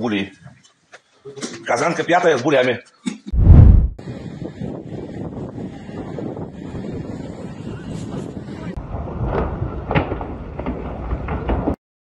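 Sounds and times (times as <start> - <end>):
wind buffeting microphone: 3.4 - 11.7.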